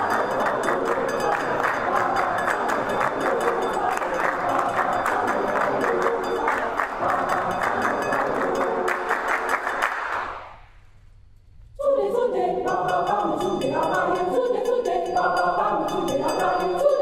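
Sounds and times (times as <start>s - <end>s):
mixed choir singing: 0.0s - 10.5s, 11.8s - 17.0s
clapped beat: 0.0s - 10.6s.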